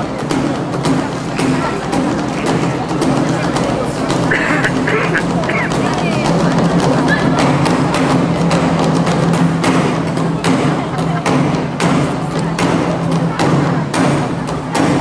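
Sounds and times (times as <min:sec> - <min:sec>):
drum ensemble playing: 0:00.0 - 0:15.0
sharp strikes on barrel drums: 0:00.0 - 0:15.0
steady low notes: 0:00.0 - 0:15.0.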